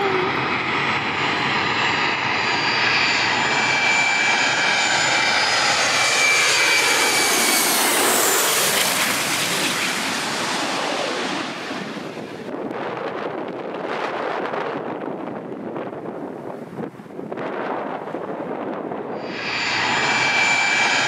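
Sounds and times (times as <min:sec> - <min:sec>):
jet airliner passing overhead: 0:00.0 - 0:15.4, 0:17.6 - 0:21.0.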